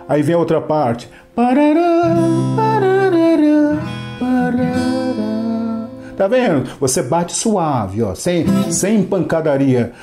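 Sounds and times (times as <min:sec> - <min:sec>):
acoustic guitar strummed softly: 0:00.0 - 0:06.7, 0:08.4 - 0:09.4
person singing slow melody: 0:01.4 - 0:06.2.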